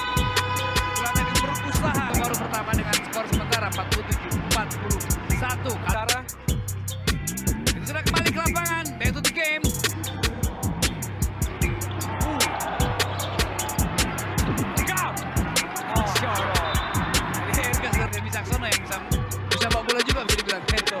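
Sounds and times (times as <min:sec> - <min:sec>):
fast beat music with bass: 0:00.0 - 0:21.0.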